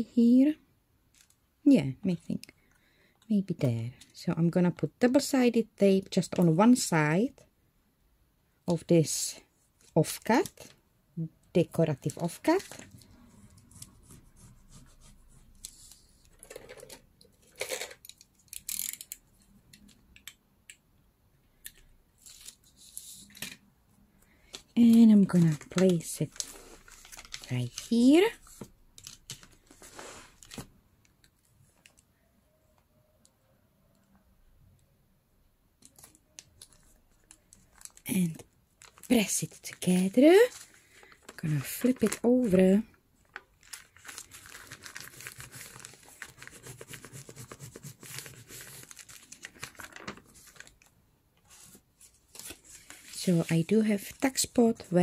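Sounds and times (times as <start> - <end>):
paper and card handling: 24.4 - 30.7, 35.8 - 50.9, 51.5 - 54.9.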